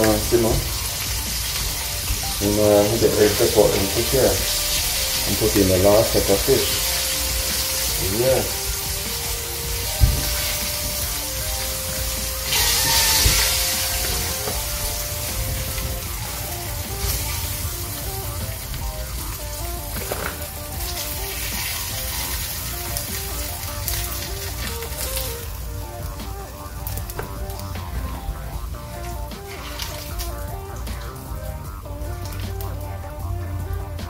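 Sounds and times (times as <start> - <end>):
background music: 0.0 - 34.0
fish frying in oil: 0.0 - 34.0.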